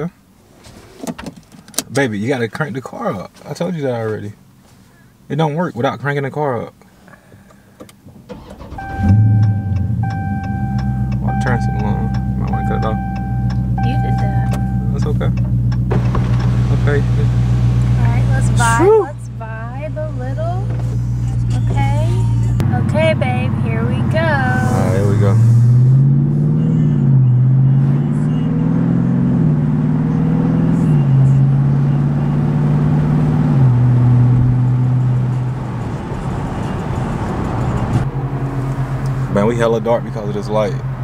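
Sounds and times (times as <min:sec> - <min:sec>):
seatbelt handling and rustling: 0:00.6 - 0:01.9
car engine idling: 0:06.8 - 0:28.4, 0:34.3 - 0:41.0.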